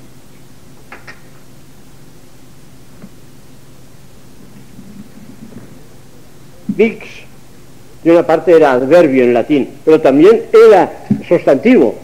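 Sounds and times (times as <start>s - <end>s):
recording hiss and low hum: 0.0s - 12.0s
faint low mumbling: 4.4s - 8.0s.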